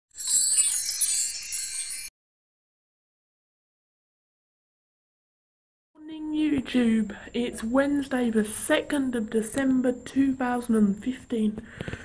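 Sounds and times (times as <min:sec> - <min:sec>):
shimmering chime sound effect: 0:00.1 - 0:02.1.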